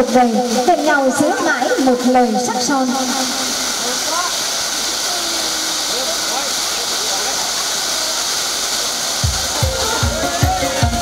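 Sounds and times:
spark fountains hissing: 0.0s - 11.0s.

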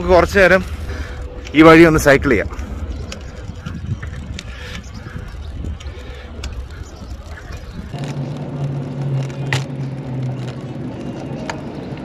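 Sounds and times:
bike tyre and road noise: 0.0s - 12.0s
wind rumbling on microphone: 0.0s - 12.0s.

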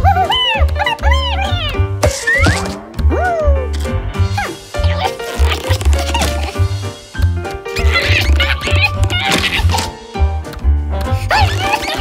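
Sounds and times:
squeaky cartoon rat calls: 7.8s - 9.7s.

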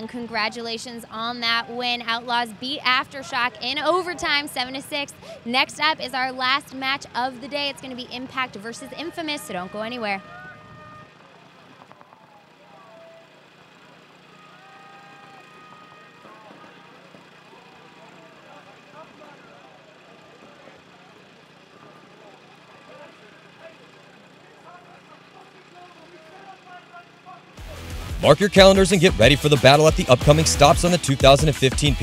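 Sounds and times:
distant indistinct voices: 0.0s - 29.0s.

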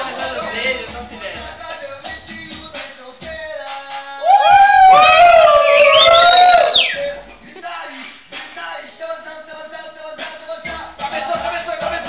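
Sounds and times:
funk music: 0.0s - 12.0s
young men howling whoops: 4.2s - 7.0s.

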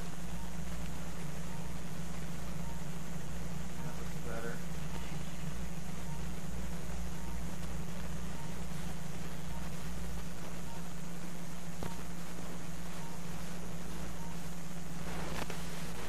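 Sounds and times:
low equipment hum: 0.0s - 16.0s.

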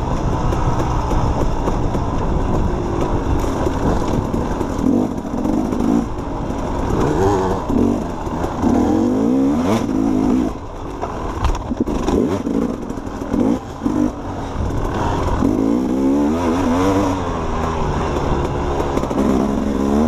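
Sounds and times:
bike rattling and knocking: 0.0s - 20.0s
dirt bike engine revving: 0.0s - 20.0s.

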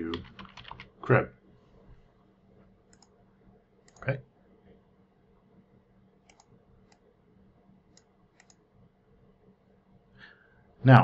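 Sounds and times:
computer mouse clicking: 2.9s - 3.2s, 3.8s - 4.1s, 6.2s - 7.1s, 7.9s - 8.6s.

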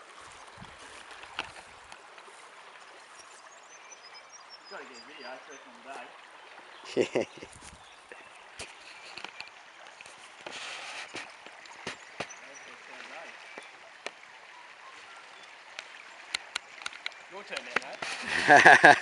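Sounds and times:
creek water running: 0.0s - 19.0s.

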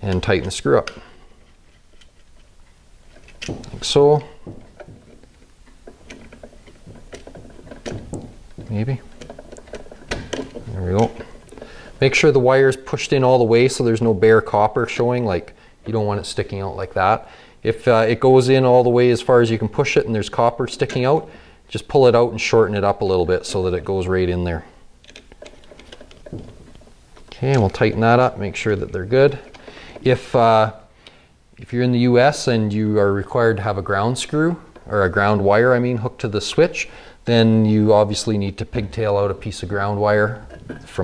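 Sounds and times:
low room hum: 0.0s - 41.0s.

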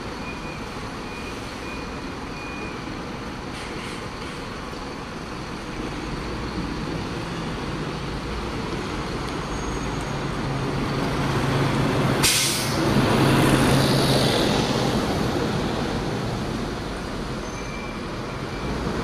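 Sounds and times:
bus diesel engine passing: 0.0s - 19.0s
air brake hiss: 12.2s - 12.8s.

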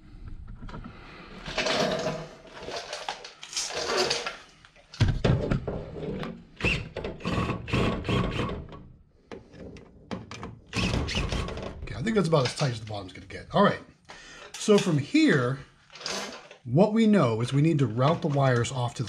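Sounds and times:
rustling and handling: 0.6s - 5.0s
cordless drill bursts: 6.6s - 8.6s, 10.7s - 11.6s.

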